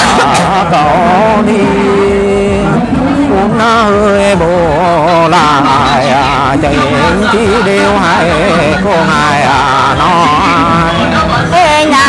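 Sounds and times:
person singing folk song: 0:00.0 - 0:12.0.

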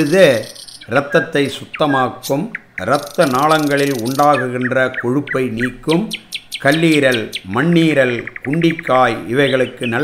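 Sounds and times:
man talking: 0:00.0 - 0:10.0
small birds chirping: 0:00.0 - 0:10.0.

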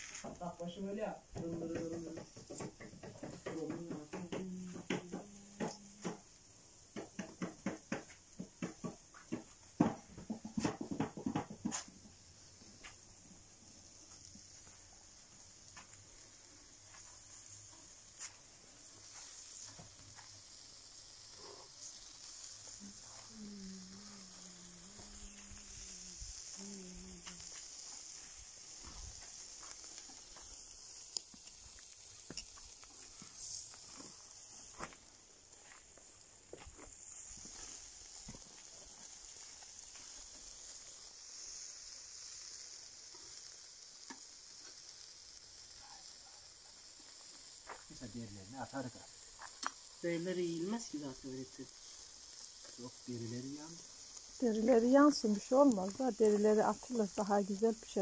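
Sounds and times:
fire crackling: 0:00.0 - 0:58.0
meat sizzling: 0:00.0 - 0:58.0.

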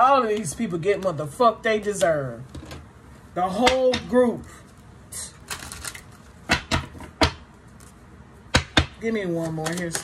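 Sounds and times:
papery rustle of cards: 0:05.4 - 0:06.2.

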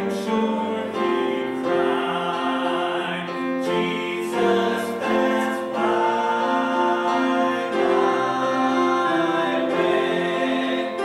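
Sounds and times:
piano accompaniment: 0:00.0 - 0:11.0
voices singing in harmony: 0:00.0 - 0:11.0.

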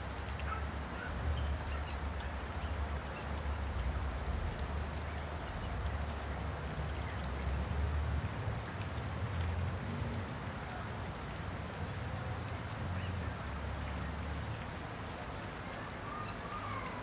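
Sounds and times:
water splashing and dripping: 0:00.0 - 0:17.0.

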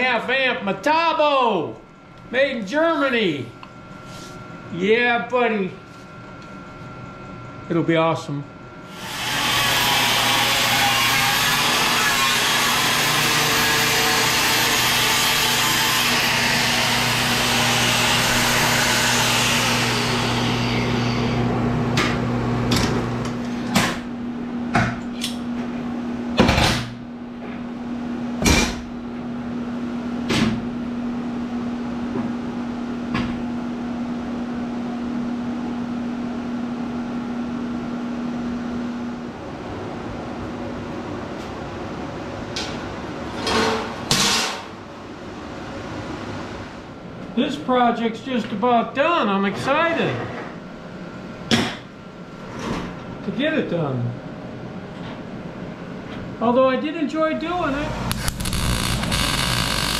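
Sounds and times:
steady low hum: 0:00.0 - 0:09.0, 0:16.1 - 0:44.1, 0:44.7 - 0:59.9
angle grinder cutting steel: 0:08.9 - 0:21.4, 0:58.1 - 0:59.9.

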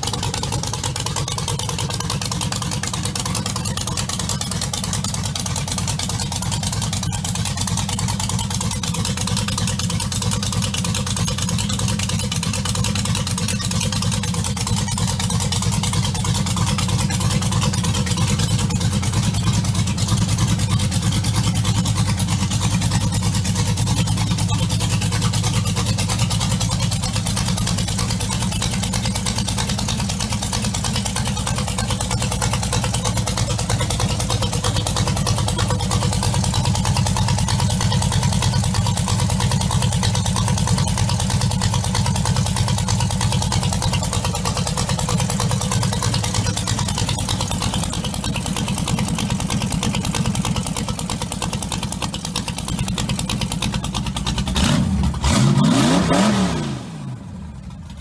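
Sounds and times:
truck engine idling and revving: 0:00.0 - 0:58.0.

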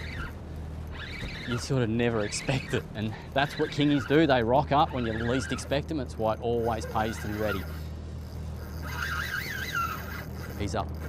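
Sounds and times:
boat motor ticking over: 0:00.0 - 0:11.0
high wavering whine: 0:00.0 - 0:11.0.

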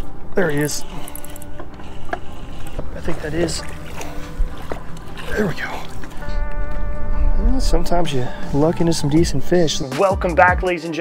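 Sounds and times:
fishing gear clicks and knocks: 0:00.0 - 0:06.9.

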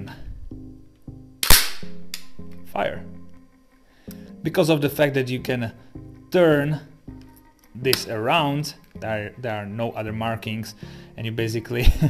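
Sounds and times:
soft background music: 0:00.0 - 0:12.0
gun bolt slamming forward: 0:01.4 - 0:02.2.

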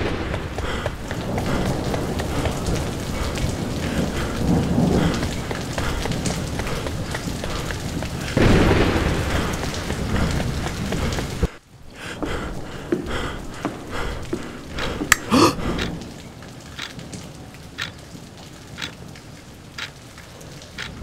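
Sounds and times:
thunder rumbling: 0:00.0 - 0:16.4
heavy rain falling: 0:00.0 - 0:21.0.

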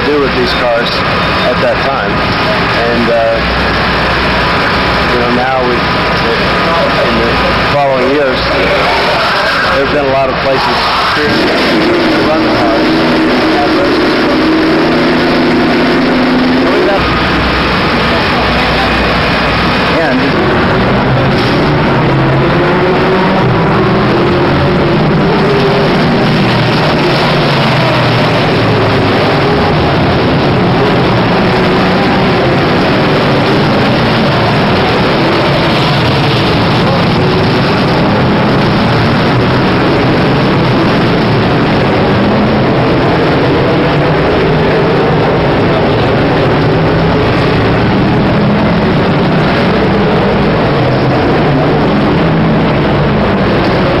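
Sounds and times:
vehicle engines running: 0:00.0 - 0:54.0.

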